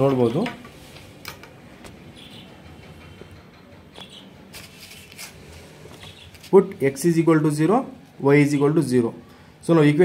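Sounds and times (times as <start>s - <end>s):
paper rustling on desk: 4.5s - 6.7s.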